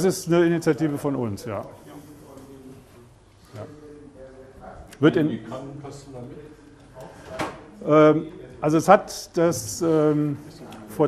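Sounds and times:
man speaking: 0.0 - 7.1, 7.8 - 11.0.

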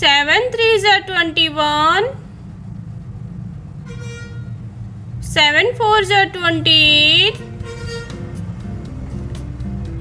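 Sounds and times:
low background music: 5.0 - 10.0.

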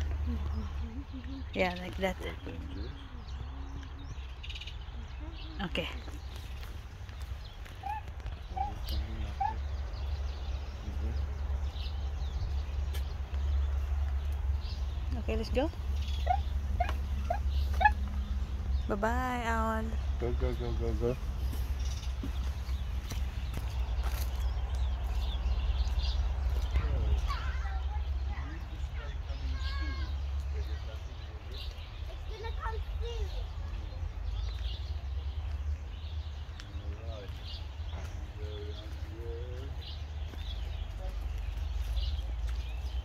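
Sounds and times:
steady low rumble: 0.0 - 43.0
animal calling: 7.6 - 11.5, 15.1 - 19.0.

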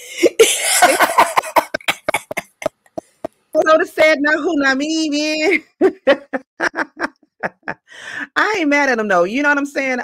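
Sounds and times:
woman laughing breathily: 0.0 - 3.3, 5.7 - 8.3.

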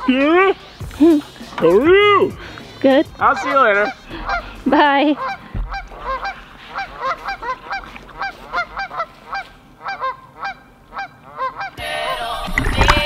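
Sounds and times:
music: 0.0 - 7.4, 11.8 - 13.0
geese honking: 0.0 - 13.0.

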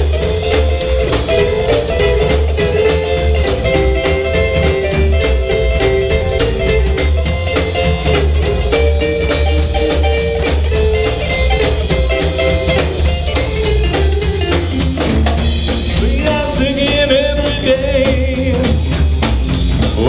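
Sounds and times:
electric guitar: 0.0 - 20.0
slapped upright bass: 0.0 - 20.0
steady drumbeat: 0.0 - 20.0
person singing: 16.0 - 18.9.

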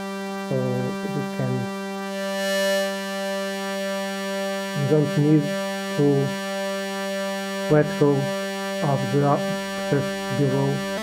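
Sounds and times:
buzzy synthesizer note: 0.0 - 11.0.

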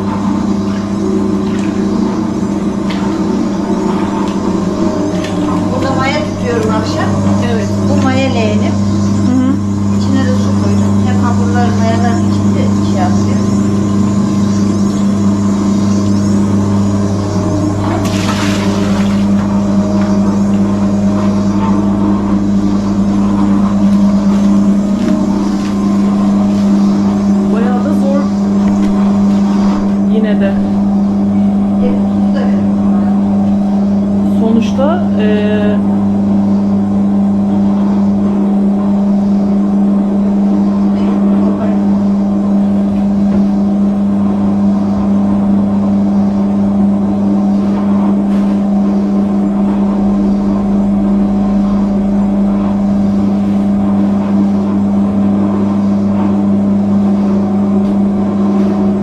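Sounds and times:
dough-kneading machine motor hum: 0.0 - 59.0.

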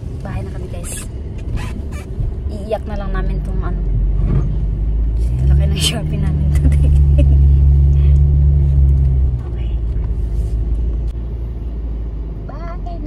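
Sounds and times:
car engine idling: 0.0 - 13.0
low rumble: 0.0 - 13.0.

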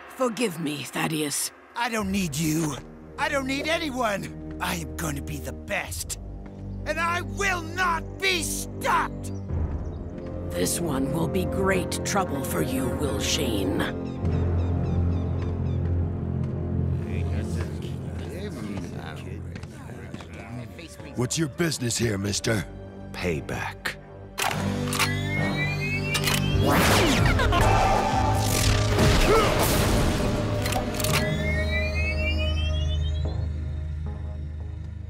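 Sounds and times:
background music: 0.0 - 35.0
rising whistle: 31.2 - 33.9.

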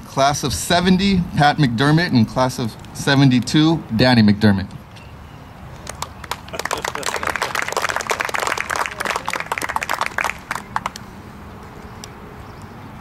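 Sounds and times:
audience clapping: 5.8 - 11.0.

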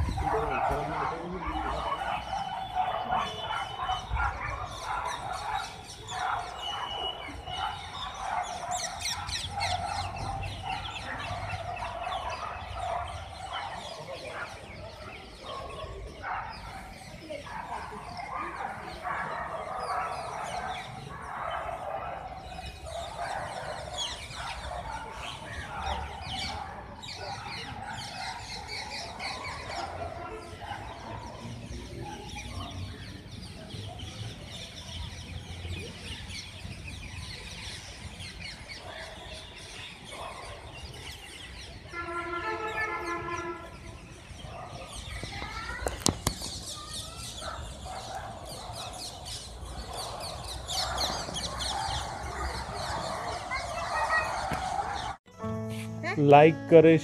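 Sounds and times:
birds chirping and calling: 0.0 - 57.0.

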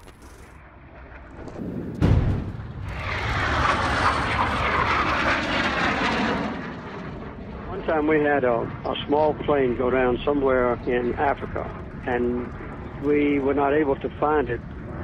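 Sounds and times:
small aircraft engine drone: 0.0 - 15.0
low thud: 1.5 - 3.4.

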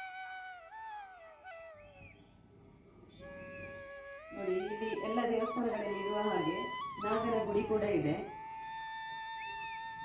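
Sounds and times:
faint flute melody: 0.0 - 2.3, 3.1 - 10.0.

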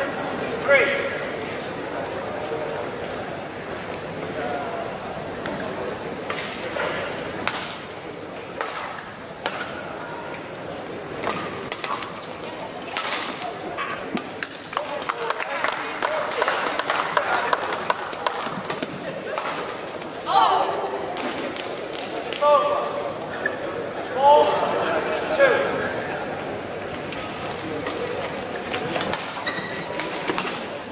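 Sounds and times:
spectator chatter: 0.0 - 30.9.

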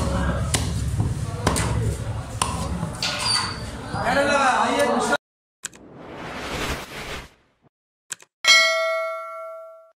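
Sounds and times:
whoosh: 5.7 - 7.7
bright bell ding: 8.4 - 9.9.

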